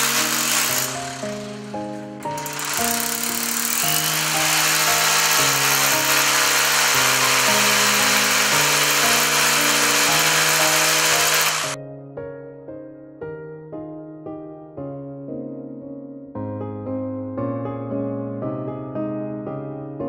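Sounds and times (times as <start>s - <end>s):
hammer drill boring into wall: 0.0s - 11.8s
gentle piano music: 0.0s - 20.0s.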